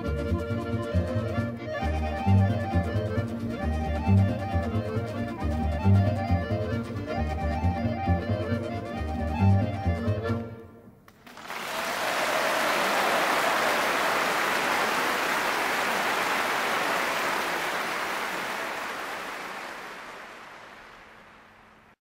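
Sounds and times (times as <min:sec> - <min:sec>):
large audience applauding: 0:11.1 - 0:22.0.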